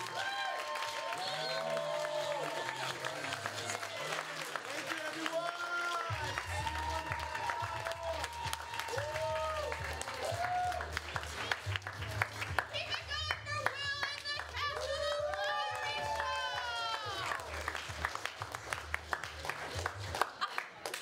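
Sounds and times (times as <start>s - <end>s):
audience applause: 0.0s - 21.0s.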